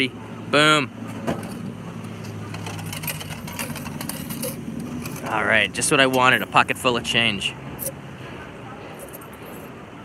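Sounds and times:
coins clinking into slot: 0:02.4 - 0:05.3.

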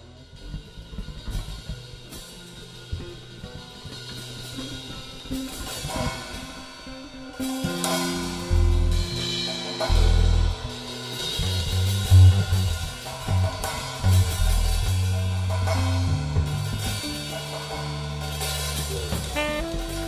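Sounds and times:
drum kit with cymbal washes: 0:00.0 - 0:20.0
bass playing sustained low notes: 0:07.9 - 0:20.0.

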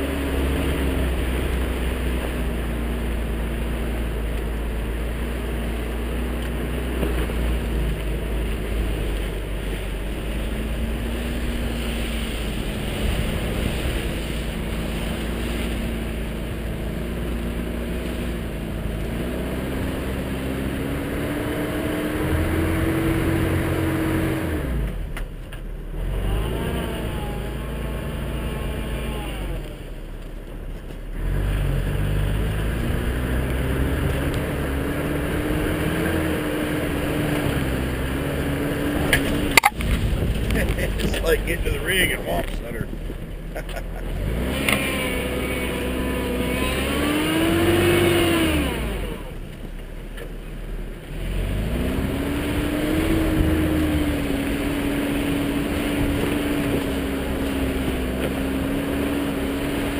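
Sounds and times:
truck engine revving: 0:00.0 - 0:25.2, 0:25.8 - 0:30.0, 0:31.1 - 0:49.6, 0:51.0 - 0:59.9.

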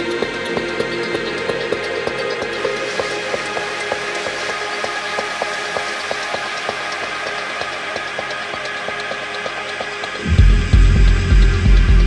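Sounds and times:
clicking techno percussion loop: 0:00.0 - 0:12.0.

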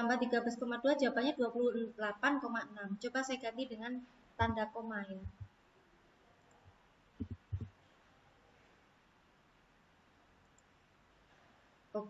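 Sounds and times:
keyboard and mouse clicks: 0:07.2 - 0:07.8.

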